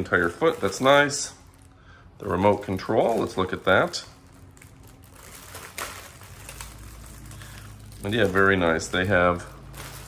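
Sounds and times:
low steady hum: 0.0 - 10.0
plastic bag rustling: 0.0 - 10.0.

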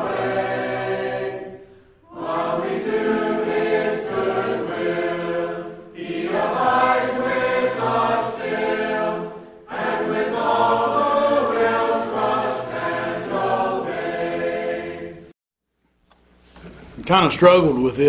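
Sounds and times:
church choir singing a hymn: 0.0 - 15.3.

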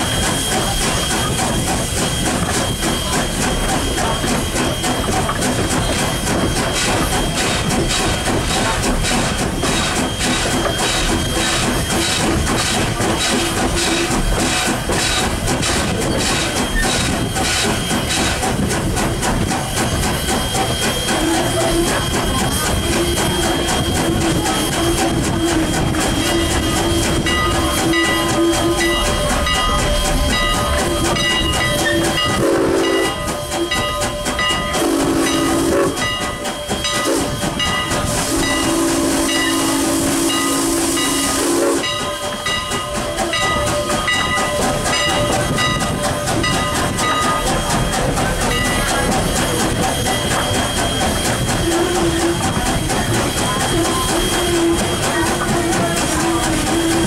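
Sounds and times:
steam locomotive hissing: 0.0 - 57.0
train clattering on rails: 0.0 - 57.0
steam whistle blasts: 20.2 - 34.0, 34.6 - 42.6, 49.5 - 57.0.

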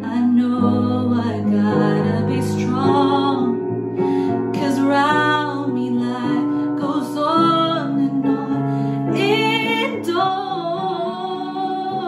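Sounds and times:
karaoke piano backing: 0.0 - 12.0
woman singing a ballad: 0.0 - 12.0.

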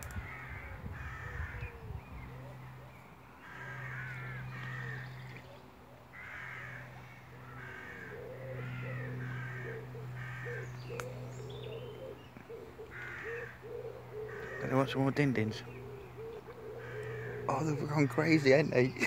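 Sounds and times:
bird calling: 0.0 - 19.0
low hum: 0.0 - 19.0.

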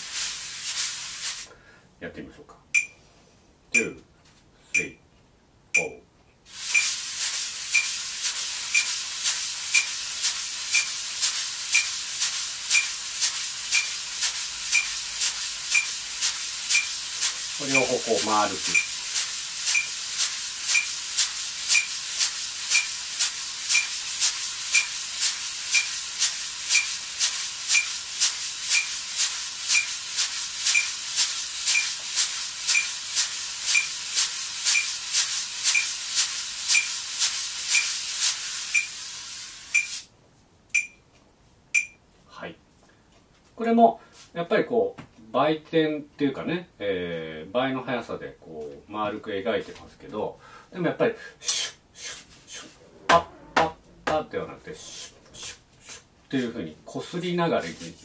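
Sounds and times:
wire brushes swishing on drumhead: 0.0 - 1.5, 6.5 - 38.9, 57.6 - 58.0
metronome beeping: 2.8 - 3.0, 3.8 - 4.0, 4.8 - 5.0, 5.8 - 6.0, 7.7 - 8.0, 8.7 - 9.0, 14.7 - 15.0, 15.7 - 16.0, 17.6 - 19.0, 38.8 - 39.0, 39.8 - 40.0, 40.8 - 41.0, 41.8 - 42.0.

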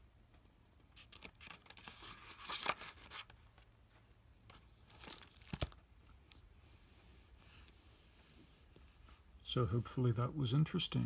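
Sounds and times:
book pages rustling: 0.9 - 9.2.

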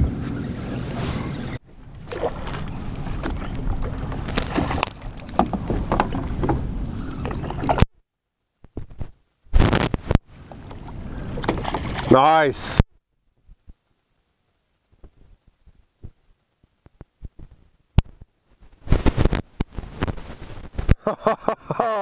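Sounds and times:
wind rumbling on microphone: 0.0 - 7.9, 16.9 - 21.0
water slapping boat hull: 0.2 - 7.9, 10.4 - 12.3
fish splashing: 2.0 - 5.4.

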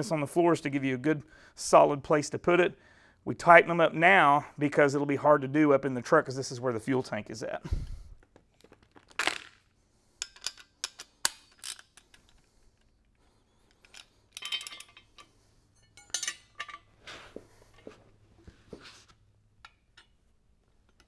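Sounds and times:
metal hand tools clinking: 13.8 - 16.9.

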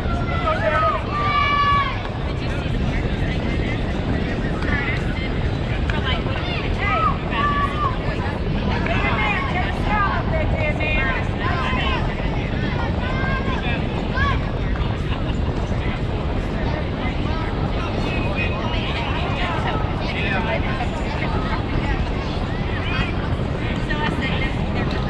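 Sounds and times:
steady low rumble: 0.0 - 25.0.

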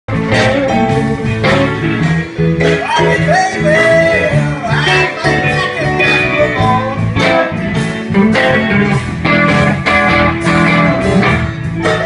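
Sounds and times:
bending sliding guitar lead: 0.1 - 12.0
blues band playing: 0.1 - 12.0.

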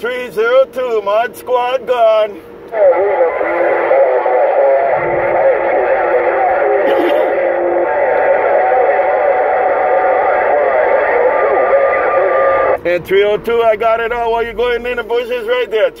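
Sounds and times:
garbled radio voices: 0.0 - 16.0.

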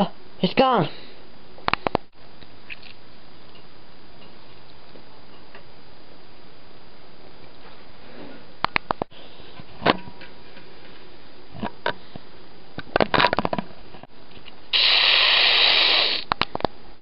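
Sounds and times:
loud hiss: 14.7 - 16.3.

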